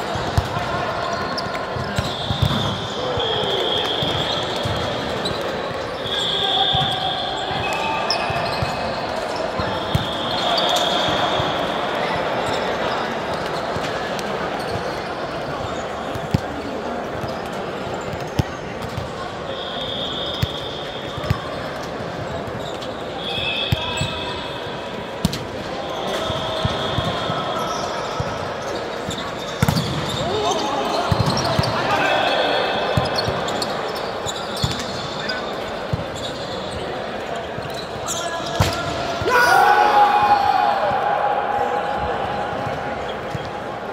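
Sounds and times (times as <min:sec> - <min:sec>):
chatter and calls in gym: 0:00.0 - 0:43.9
sneaker squeaks on court: 0:00.3 - 0:11.5, 0:20.0 - 0:24.2, 0:26.0 - 0:31.8, 0:32.9 - 0:38.9.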